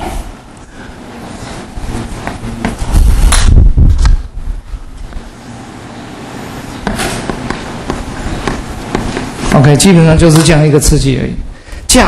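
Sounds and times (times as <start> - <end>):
heavy dull thumps: 6.8 - 9.5.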